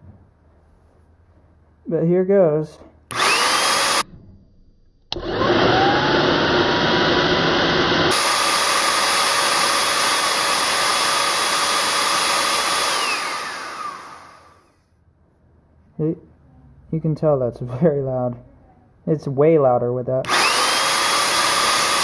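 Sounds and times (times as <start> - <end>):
vacuum cleaner motor whining: 3.1 - 4.0, 5.2 - 14.8, 20.2 - 22.0.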